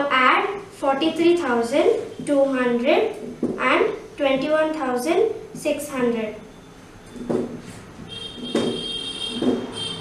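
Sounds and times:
marker squeaking on whiteboard: 7.0s - 9.9s.

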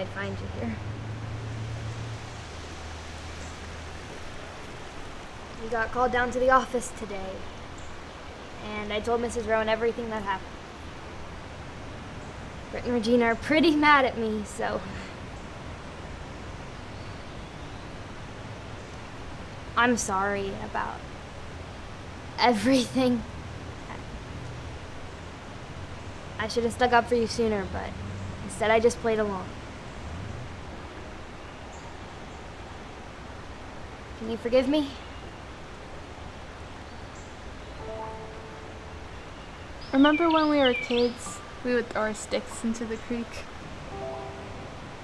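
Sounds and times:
creek water rushing: 0.0s - 45.0s
outdoor background hiss: 0.0s - 45.0s
low steady hum: 37.7s - 45.0s.

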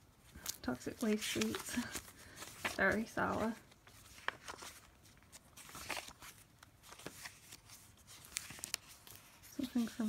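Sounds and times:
paper rustling: 0.2s - 10.0s.

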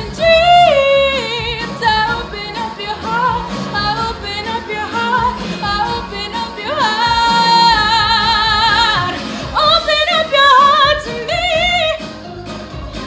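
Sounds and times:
backing track: 0.0s - 13.0s
woman singing pop song: 0.0s - 13.0s.

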